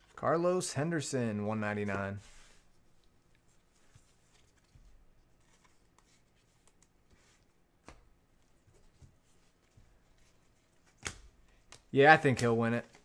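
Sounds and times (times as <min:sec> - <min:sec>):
trading cards rustling and clicking: 0:03.0 - 0:13.0.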